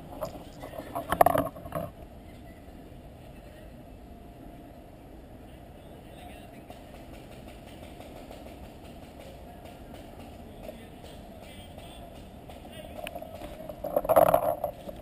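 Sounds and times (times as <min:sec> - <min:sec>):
faint distant voices: 0:00.1 - 0:15.0.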